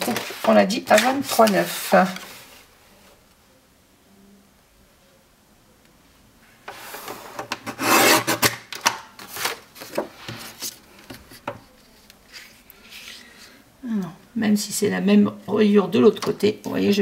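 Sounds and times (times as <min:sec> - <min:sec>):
cardstock rustling and sliding: 0:00.0 - 0:02.6.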